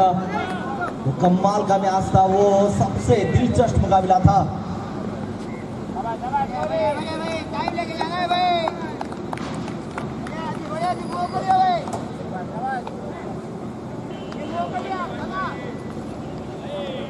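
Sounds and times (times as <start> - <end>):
crowd chatter: 0.0 - 17.0
men talking and calling: 0.0 - 17.0.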